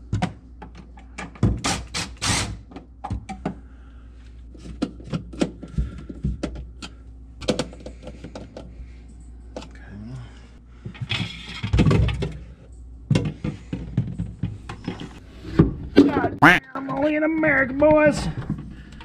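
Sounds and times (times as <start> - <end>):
plastic parts clicking and knocking: 4.6 - 8.7.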